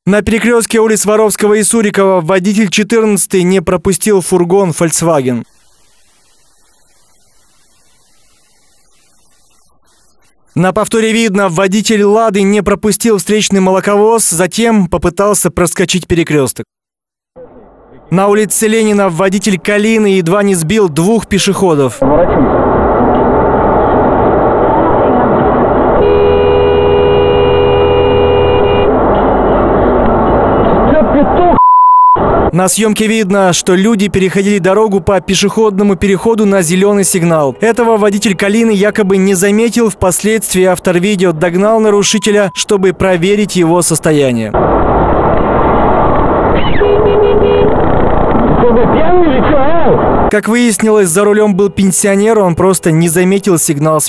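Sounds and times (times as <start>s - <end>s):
car engine and road noise: 17.4s - 19.7s, 21.7s - 32.6s, 33.8s - 50.3s
voices in car: 21.4s - 23.4s, 30.7s - 31.6s
car horn honking: 25.0s - 31.2s, 46.7s - 47.8s
car horn held: 26.0s - 29.4s.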